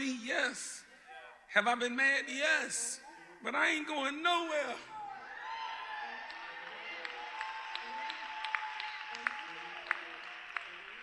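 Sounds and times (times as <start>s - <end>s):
congregation applauding and calling out: 5.1s - 11.0s.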